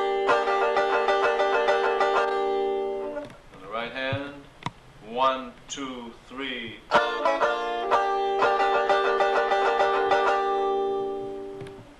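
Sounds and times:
banjo chord ringing: 0:00.0 - 0:03.2, 0:06.9 - 0:11.6
banjo tremolo picking: 0:00.0 - 0:03.2, 0:06.9 - 0:11.8.

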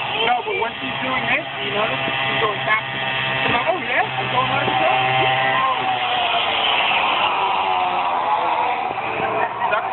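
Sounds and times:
small motor whining: 0:00.0 - 0:09.9.

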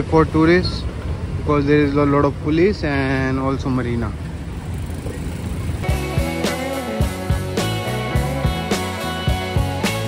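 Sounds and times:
street traffic: 0:00.0 - 0:10.0
music: 0:05.8 - 0:10.0.

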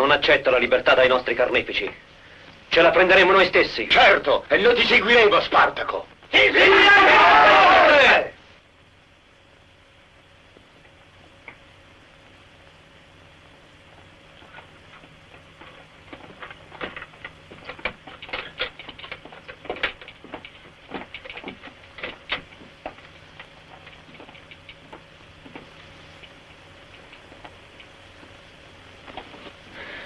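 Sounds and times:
faint steady hum: 0:00.0 - 0:30.0
footsteps on stone stairs: 0:13.9 - 0:26.4.

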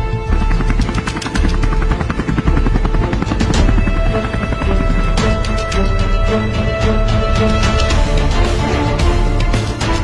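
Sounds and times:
helicopter rotor chopping: 0:00.0 - 0:06.8
background music: 0:00.0 - 0:10.0.

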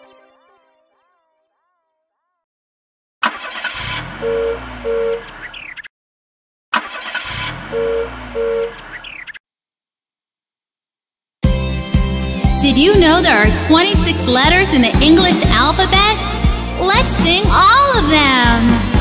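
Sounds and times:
cartoon car engine revving: 0:03.2 - 0:05.9, 0:06.8 - 0:09.3.

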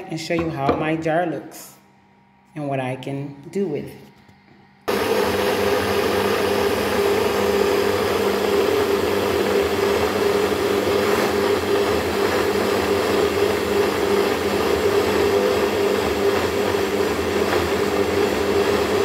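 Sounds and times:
blender motor running: 0:04.8 - 0:19.0.

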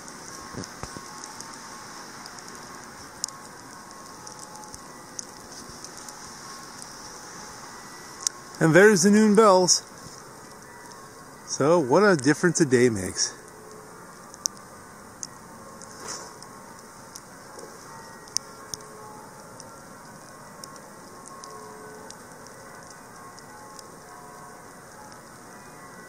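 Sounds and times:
distant bells ringing: 0:00.0 - 0:26.0
outdoor hiss: 0:00.0 - 0:26.0.

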